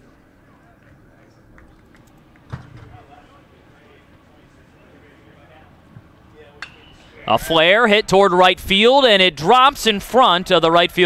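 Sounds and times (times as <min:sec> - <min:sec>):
crowd murmur: 0:00.0 - 0:08.8
bat hitting ball: 0:06.6 - 0:07.2.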